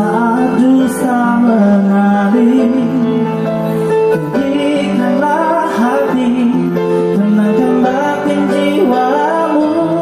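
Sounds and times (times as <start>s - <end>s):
electronic keyboard music: 0.0s - 10.0s.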